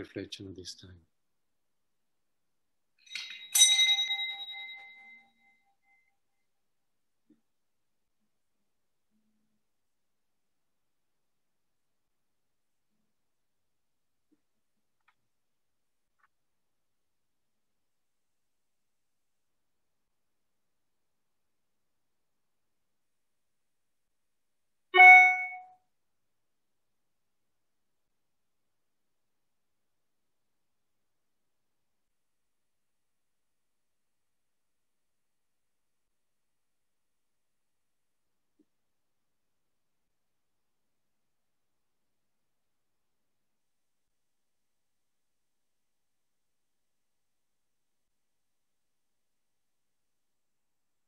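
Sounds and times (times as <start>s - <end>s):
small bell ringing: 3.0s - 6.1s, 25.0s - 25.7s.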